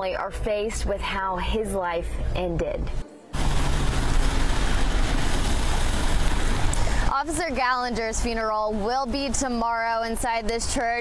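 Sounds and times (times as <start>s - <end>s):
low rumble: 2.2s - 7.2s.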